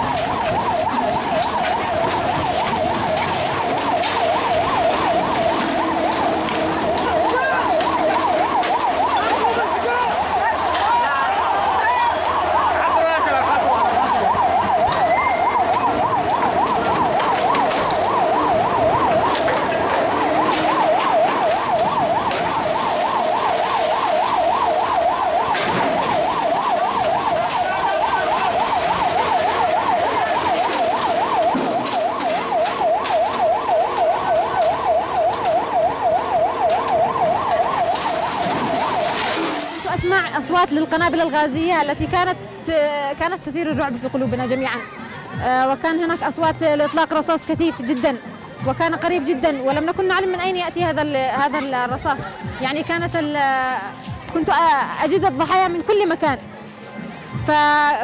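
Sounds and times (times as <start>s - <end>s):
emergency siren warbling: 0.0s - 42.0s.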